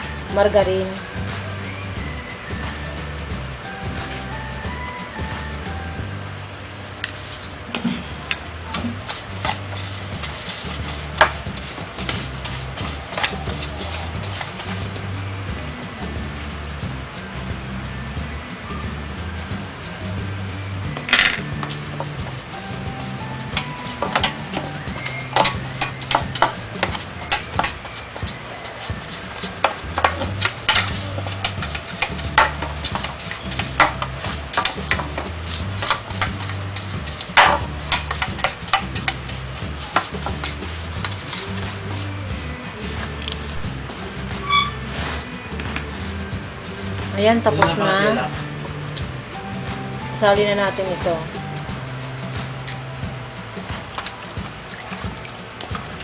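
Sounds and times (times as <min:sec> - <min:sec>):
background music with bass: 0:00.0 - 0:56.0
pastry brush scraping pan: 0:06.8 - 0:08.0, 0:08.6 - 0:15.2, 0:21.3 - 0:42.2
brush knocking on pan: 0:08.7 - 0:15.0, 0:21.0 - 0:42.0.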